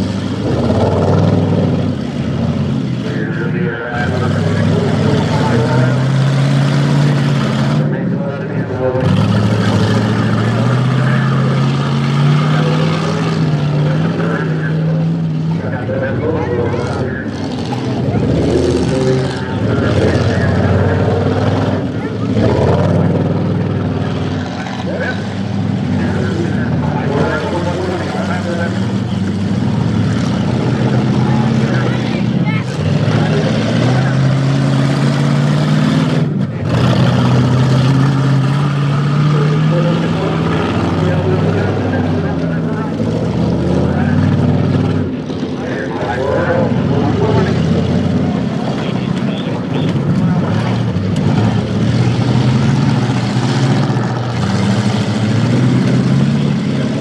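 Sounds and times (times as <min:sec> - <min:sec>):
car engines revving: 0:00.0 - 0:57.0.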